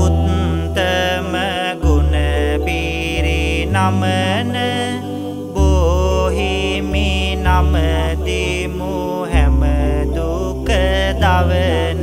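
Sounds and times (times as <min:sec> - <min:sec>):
backing music with deep bass: 0:00.0 - 0:12.0
monk chanting devotional verse: 0:00.0 - 0:12.0.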